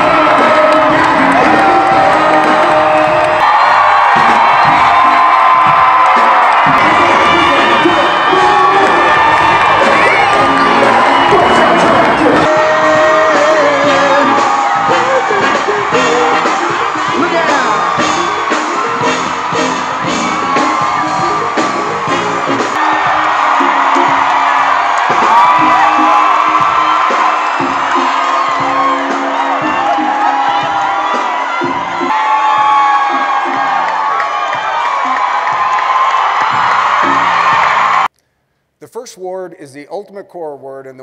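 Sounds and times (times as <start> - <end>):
crowd cheering and whooping: 0.0 - 38.1
loud music with steady beat: 0.0 - 38.1.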